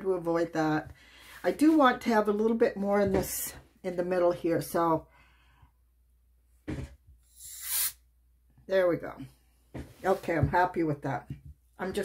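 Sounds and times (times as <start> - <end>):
compressed air hissing: 7.3 - 8.0.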